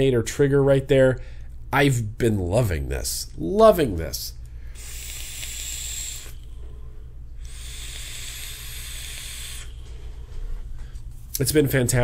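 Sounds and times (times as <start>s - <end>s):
vapour hissing through atomizer: 4.6s - 10.8s.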